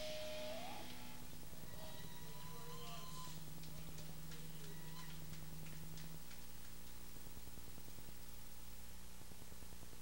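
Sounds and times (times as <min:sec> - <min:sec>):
higher hum tone: 0:00.0 - 0:09.4
low electrical hum and hiss: 0:00.0 - 0:10.0.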